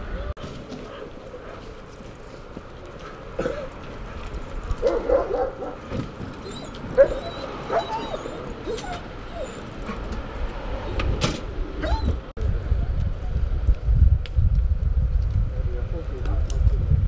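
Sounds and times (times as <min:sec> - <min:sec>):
dog whining and yelping: 0:06.4 - 0:10.0, 0:11.8 - 0:12.2.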